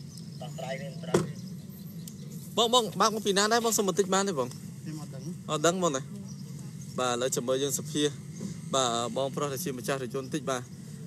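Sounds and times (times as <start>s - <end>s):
steady low hum: 0.0s - 11.0s
distant people talking: 0.2s - 11.0s.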